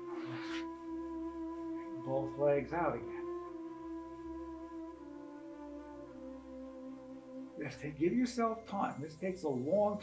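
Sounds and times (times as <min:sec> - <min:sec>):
breathy hiss: 0:00.0 - 0:00.8
soft new-age music: 0:00.0 - 0:10.0.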